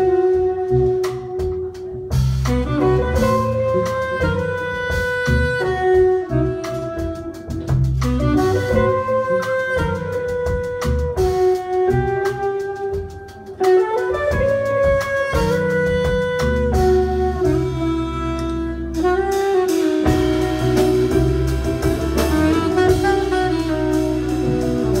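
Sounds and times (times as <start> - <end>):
electric bass line: 0.0 - 25.0
saxophone melody: 0.0 - 25.0.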